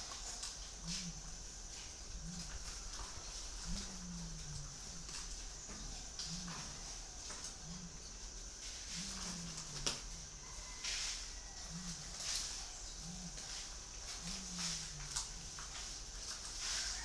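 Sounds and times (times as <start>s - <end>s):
dove cooing: 0.0s - 17.0s.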